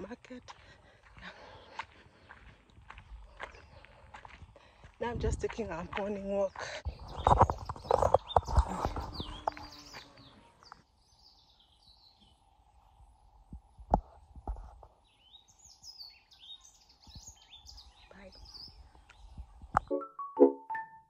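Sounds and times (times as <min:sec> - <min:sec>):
footsteps on dirt road: 0:00.0 - 0:10.9
small birds chirping: 0:00.0 - 0:20.0.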